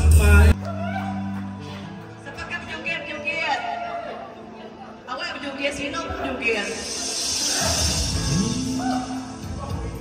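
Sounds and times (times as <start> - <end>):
karaoke backing track: 0.0 - 2.5.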